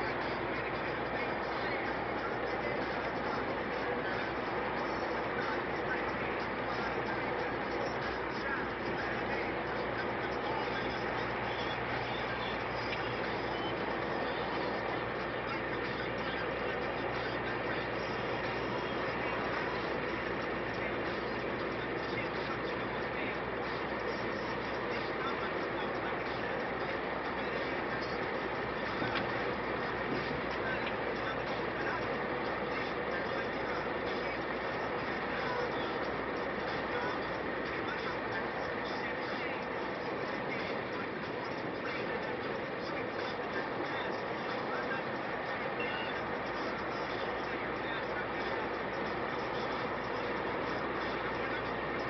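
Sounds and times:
motorway traffic rumble: 0.0s - 52.0s
tyre road noise at speed: 0.0s - 52.0s.

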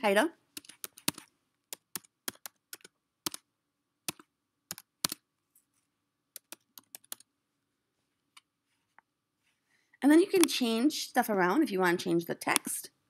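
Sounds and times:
typing on computer keyboard: 0.6s - 3.4s, 4.1s - 5.2s, 6.4s - 7.3s.

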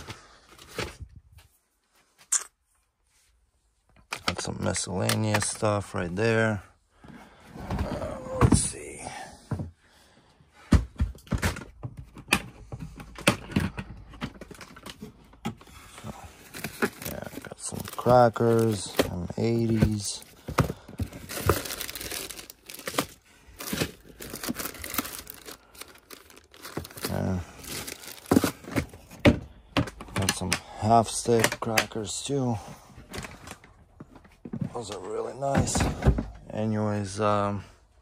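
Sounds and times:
plastic cases knocking in a tote: 16.5s - 30.6s, 35.4s - 36.4s.

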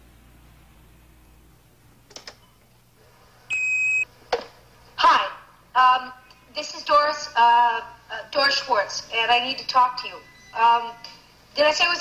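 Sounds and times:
steady beep: 3.5s - 4.0s
woman's recorded message: 5.0s - 12.0s.

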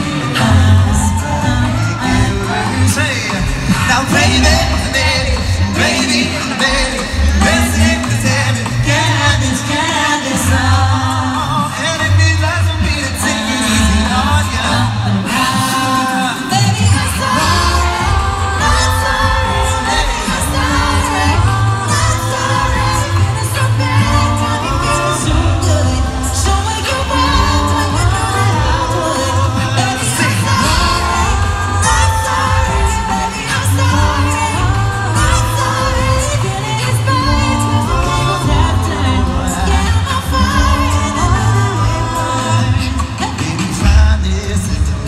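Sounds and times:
beatboxed beat: 0.0s - 45.0s
voices singing in harmony: 0.0s - 45.0s
sung bass line: 16.6s - 45.0s.

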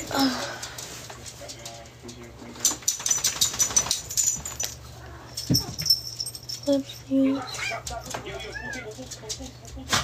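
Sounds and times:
pet animal crying: 7.2s - 9.0s.

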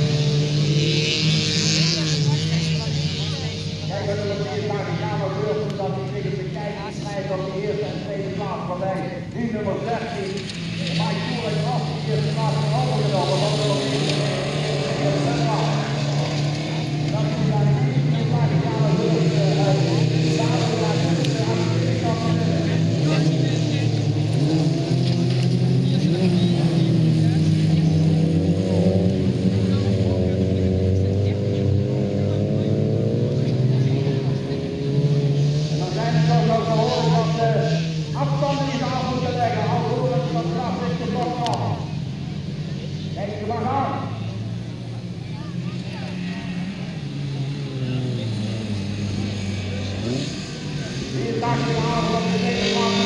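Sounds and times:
racing car engines revving: 0.0s - 53.0s.

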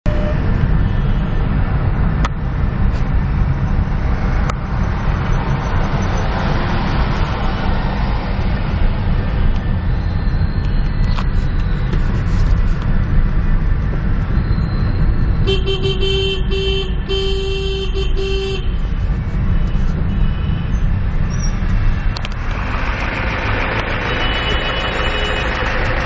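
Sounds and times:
car engine and tyres rumbling: 0.0s - 26.0s.

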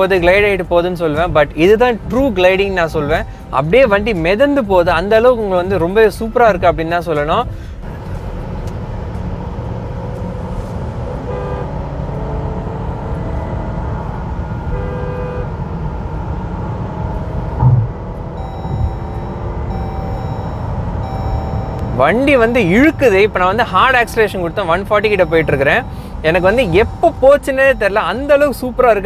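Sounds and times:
road and tyre rumble in car cabin: 0.0s - 29.0s
car horns tooting: 11.1s - 11.9s, 14.6s - 15.7s.

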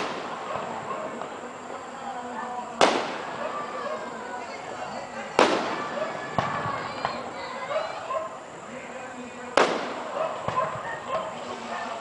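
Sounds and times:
firework booms: 0.0s - 8.4s, 9.5s - 11.8s
crowd talking: 0.0s - 12.0s
firework cracks: 0.0s - 12.0s.

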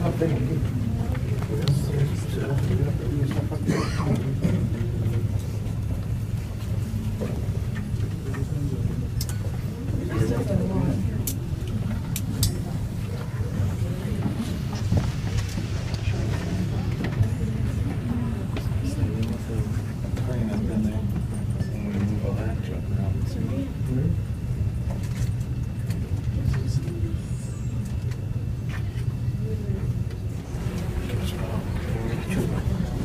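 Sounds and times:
indistinct voices talking: 0.0s - 24.7s, 25.8s - 33.0s
steady low hum: 0.0s - 33.0s.

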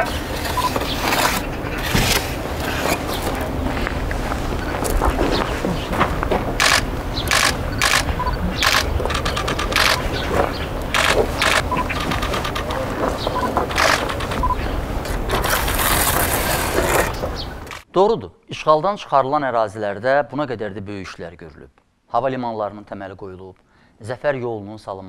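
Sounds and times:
trowel scraping mortar: 0.0s - 3.4s, 11.8s - 17.8s
wind rumble on microphone: 0.0s - 17.8s.

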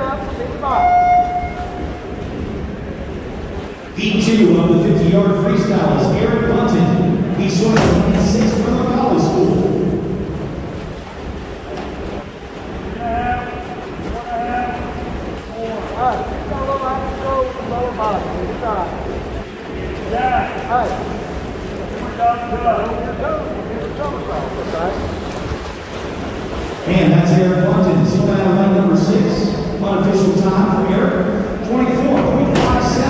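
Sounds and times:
steady low rumble: 1.4s - 33.0s
voices talking and calling out: 12.8s - 21.2s.

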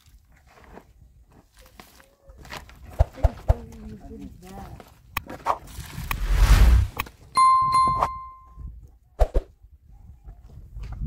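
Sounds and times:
loud rushing noise: 6.1s - 7.0s
bell-like ding: 7.4s - 8.6s.

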